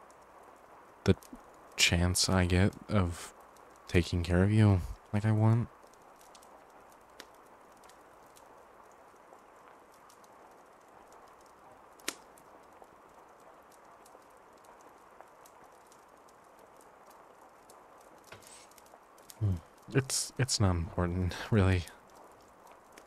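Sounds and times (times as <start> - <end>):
faint steady hiss: 0.0 - 23.0
soft scattered clicks: 0.0 - 23.0.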